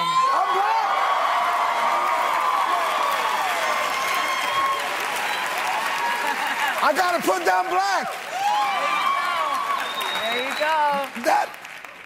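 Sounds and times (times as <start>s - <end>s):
shouts and whoops: 0.0s - 11.6s
audience applauding: 0.0s - 12.0s.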